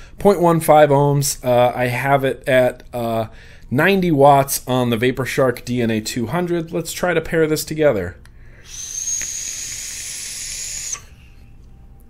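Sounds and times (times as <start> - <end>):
vape coil hissing: 8.6 - 11.3
thin high whistle: 8.6 - 11.8.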